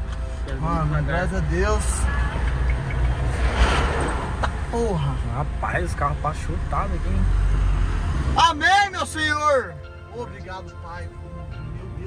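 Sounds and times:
vehicle passing by: 1.5s - 4.7s, 6.4s - 8.6s.

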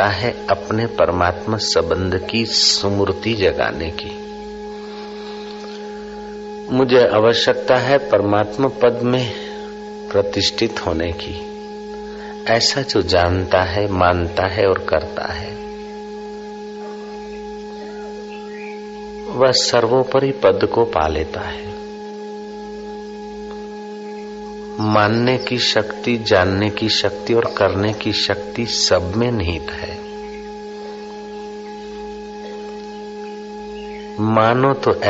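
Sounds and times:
sustained drone music: 0.0s - 35.0s.

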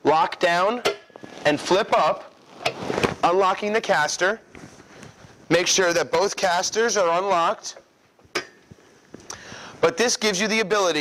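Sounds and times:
handling noise: 1.1s - 3.3s.

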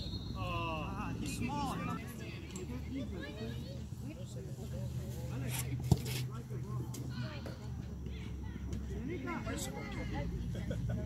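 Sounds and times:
people chatting and laughing: 0.0s - 11.0s.

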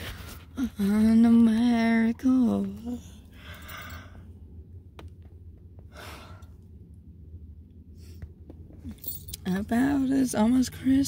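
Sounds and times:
car cabin rumble: 0.0s - 11.0s
woman breathing out heavily: 5.9s - 6.6s.

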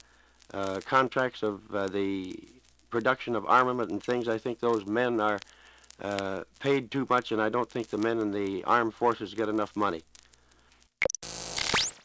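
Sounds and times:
burst of hiss: 0.0s - 0.8s, 4.7s - 6.6s
recording hiss and hum: 0.0s - 12.0s.

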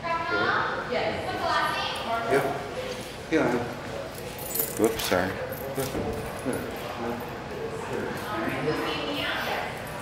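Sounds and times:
metallic jingling and clinking: 4.1s - 7.4s.

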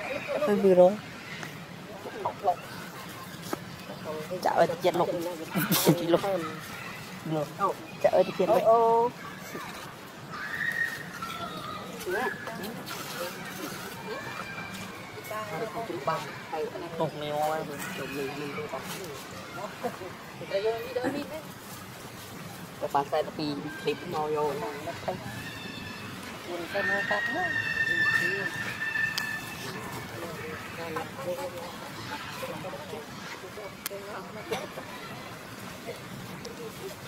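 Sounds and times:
high drawn-out animal call: 25.3s - 30.0s.

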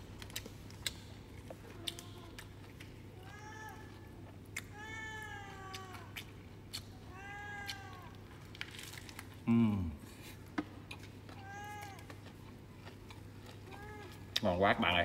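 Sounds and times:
cat meowing: 4.7s - 6.2s, 7.1s - 8.2s.

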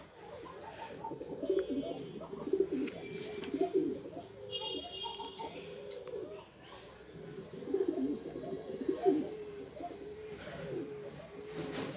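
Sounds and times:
pigeon cooing: 0.0s - 11.9s.

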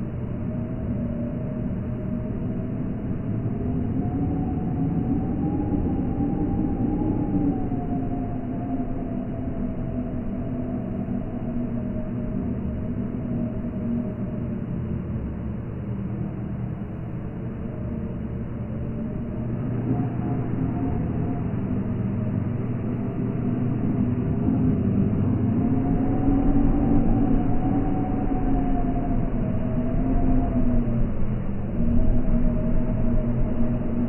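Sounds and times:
faint wavering tones: 0.0s - 34.0s
low rumbling drone: 0.0s - 34.0s.

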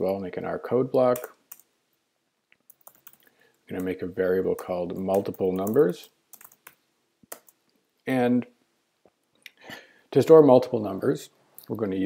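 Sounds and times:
keyboard keystrokes: 5.0s - 7.6s.

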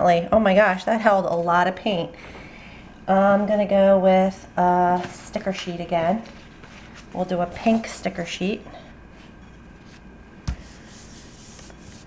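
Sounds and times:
hands rubbing sticker sheet: 10.5s - 12.0s.

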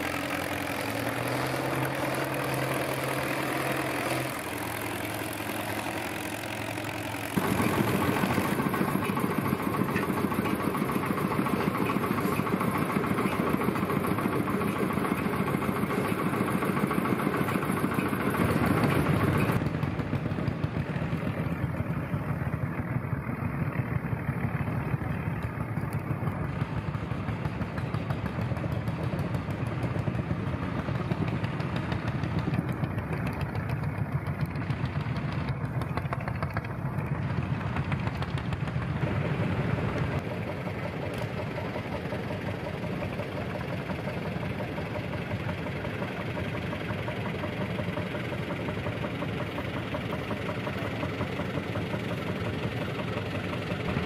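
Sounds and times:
sled dragging across dirt: 0.0s - 26.8s
engine idling: 0.0s - 54.0s
tractor engine under load: 0.0s - 54.0s.

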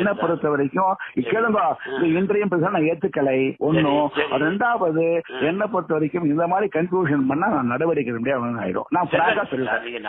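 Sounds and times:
person talking: 0.0s - 8.2s.

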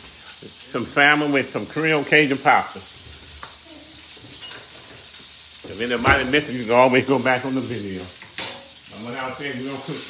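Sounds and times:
fish sizzling in a frying pan: 0.0s - 10.0s.

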